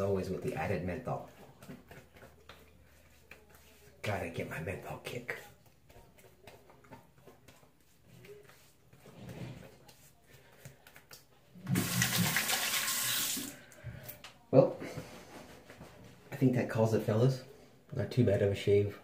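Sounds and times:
water running from sink tap: 11.6 - 13.6.

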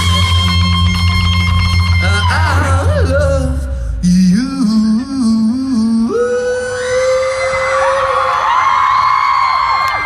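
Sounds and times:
live band guitars and bass: 0.0 - 4.9
person singing: 0.0 - 8.1.

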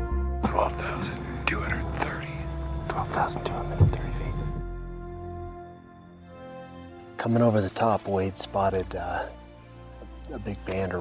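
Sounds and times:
background music: 0.0 - 11.0
man whispering: 0.4 - 4.6.

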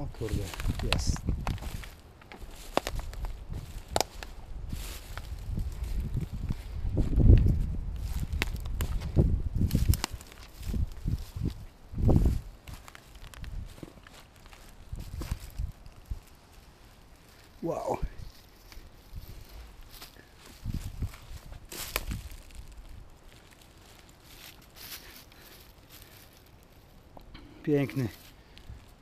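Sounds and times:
brush rustling: 0.0 - 29.0
footsteps crunching through dry grass: 0.0 - 29.0
twigs cracking: 0.0 - 29.0.

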